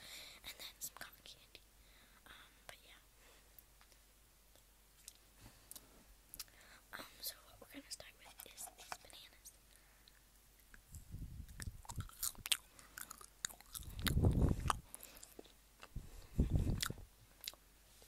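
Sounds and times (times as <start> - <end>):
wet mouth clicks: 10.1 - 16.0, 16.7 - 17.6
biting and chewing candy: 11.5 - 17.6.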